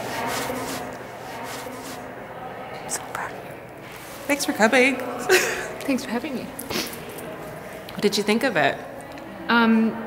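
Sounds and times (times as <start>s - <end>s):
low room noise: 0.0s - 10.0s
faint whispering: 0.2s - 4.2s.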